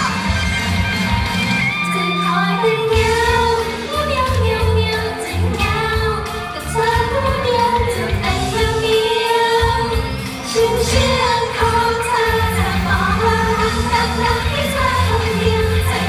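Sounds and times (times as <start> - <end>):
beat and bass: 0.0 - 16.0
female group singing pop song: 1.8 - 16.0.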